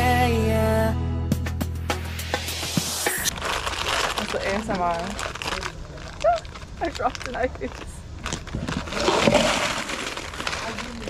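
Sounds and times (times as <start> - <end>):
crinkling rustling handling noise: 3.3 - 11.0.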